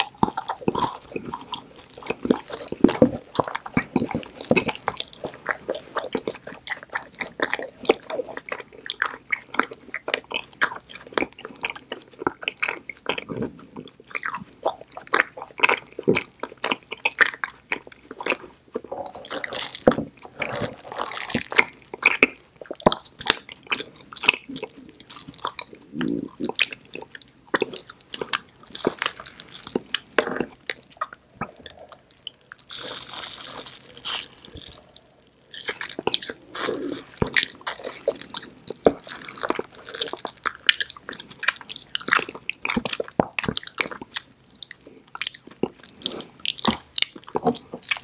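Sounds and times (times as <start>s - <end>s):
chewing with mouth clicks: 0.0s - 48.0s.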